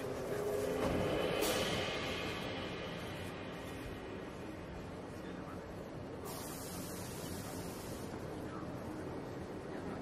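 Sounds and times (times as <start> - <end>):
dense low rumble: 0.0 - 6.0
steady hiss: 0.0 - 9.9.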